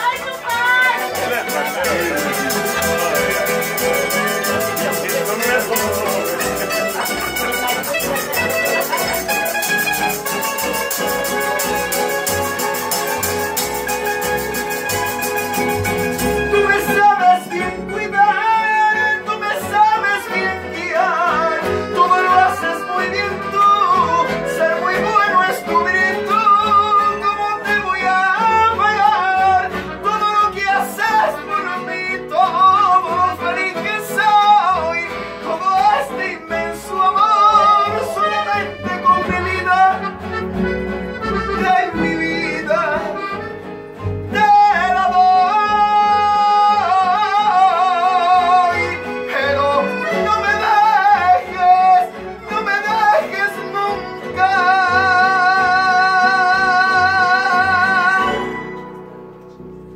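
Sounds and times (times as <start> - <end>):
person singing: 0.0 - 40.0, 41.3 - 43.4, 44.3 - 58.5
accordion: 0.0 - 59.9
strummed guitars: 0.0 - 59.9.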